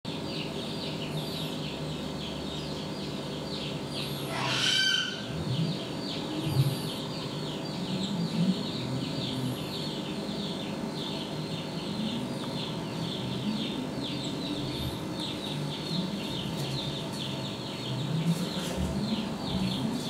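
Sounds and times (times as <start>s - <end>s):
birds chirping: 0.1s - 20.0s.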